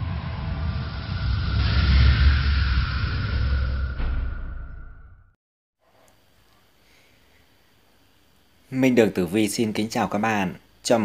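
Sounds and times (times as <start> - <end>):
hissing whoosh: 0.0 - 5.1
deep steady rumble: 0.0 - 5.3.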